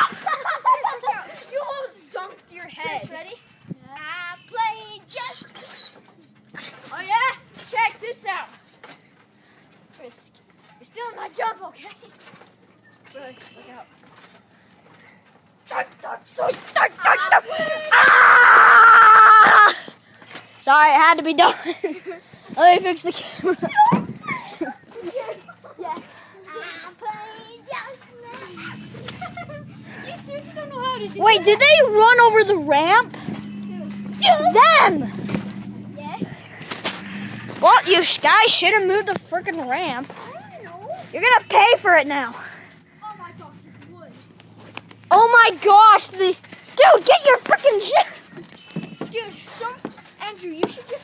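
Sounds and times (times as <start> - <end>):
faint children's voices: 21.5 - 44.2.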